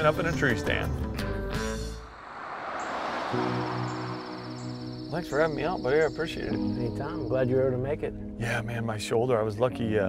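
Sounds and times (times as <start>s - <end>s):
soft rushing wash: 2.1s - 4.9s
crickets trilling: 2.1s - 8.0s.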